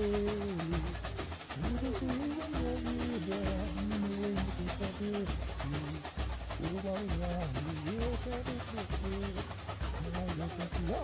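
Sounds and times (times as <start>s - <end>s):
samba percussion: 0.0s - 11.0s
sliding melody: 0.0s - 11.0s.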